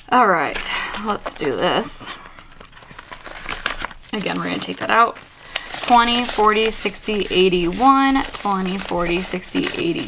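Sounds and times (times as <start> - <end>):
banknotes rustling: 0.2 - 10.0
plastic pocket crinkling: 0.3 - 10.0.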